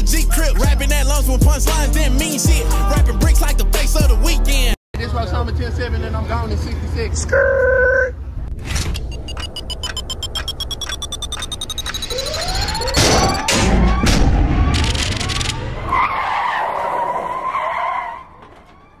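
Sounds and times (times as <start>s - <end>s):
rising tone: 8.9s - 13.5s
rapid stopwatch ticking: 9.0s - 13.4s.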